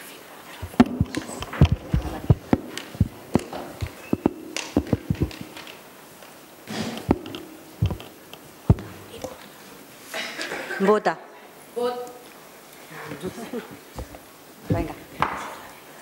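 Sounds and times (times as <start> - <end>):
faint room noise: 0.0 - 16.0
light knocks and taps: 0.6 - 5.8, 7.0 - 9.4.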